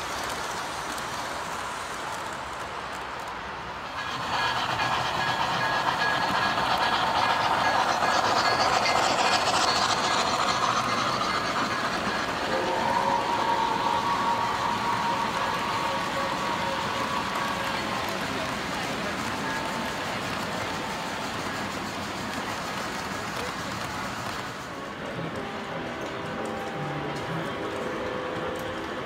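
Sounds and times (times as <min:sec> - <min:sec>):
model train rolling on track: 0:00.0 - 0:29.0
steady multi-pitch tone: 0:04.0 - 0:17.5.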